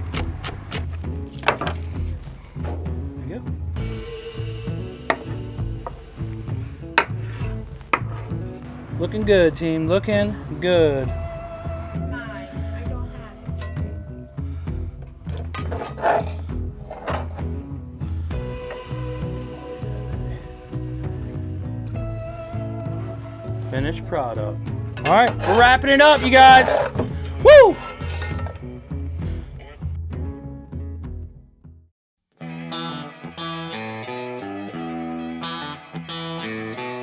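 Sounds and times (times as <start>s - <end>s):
background music with bass beat: 0.0s - 31.6s
metal spatulas scraping cast iron: 6.9s - 8.4s, 13.6s - 17.6s, 24.9s - 28.8s.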